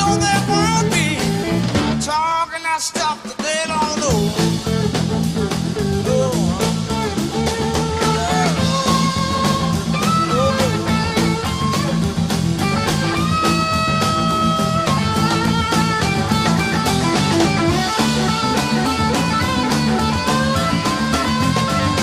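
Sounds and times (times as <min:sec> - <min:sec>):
bass: 0:00.0 - 0:02.3, 0:03.8 - 0:22.0
electric guitar lead line: 0:00.0 - 0:02.3, 0:03.7 - 0:22.0
steady drum beat: 0:00.0 - 0:22.0.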